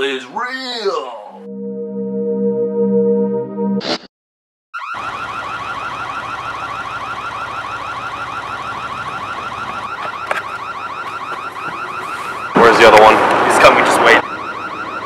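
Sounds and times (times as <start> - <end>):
car alarm rising chirps: 4.8 - 15.0.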